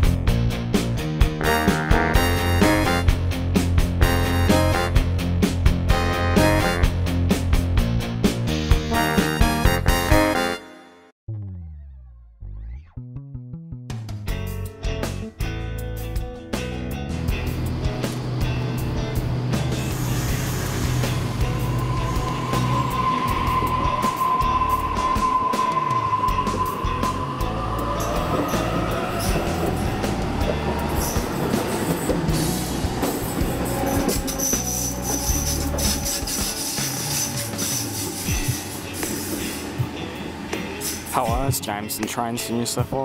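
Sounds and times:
background music: 0.0s - 43.0s.

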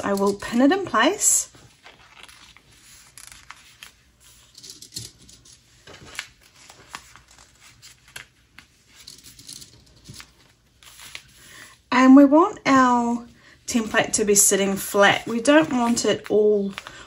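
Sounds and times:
paper rustling: 1.5s - 11.6s, 15.0s - 17.0s
pins clicking through paper: 4.3s - 5.6s, 8.9s - 10.3s.

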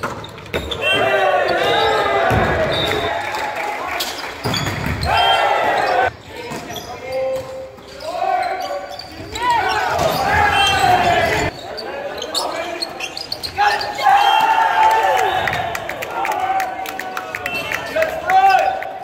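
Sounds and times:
players calling out: 7.9s - 18.9s.

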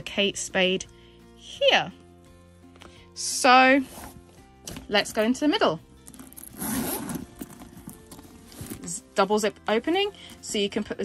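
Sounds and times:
zipper rasp: 3.8s - 4.3s, 6.1s - 9.0s.

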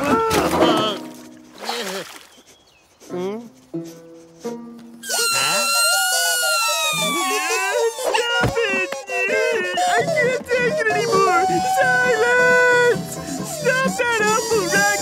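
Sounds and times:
cartoon sound effects: 5.0s - 9.4s
cartoon birds honking: 5.0s - 15.0s
cartoon music: 5.0s - 15.0s.

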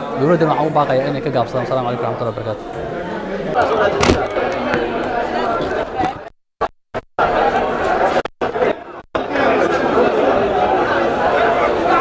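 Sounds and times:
crowd chattering: 0.0s - 6.3s, 7.2s - 12.0s.

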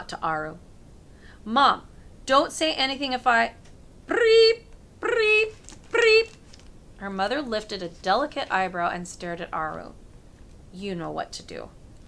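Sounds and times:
woman voicing high tones: 4.1s - 6.4s.

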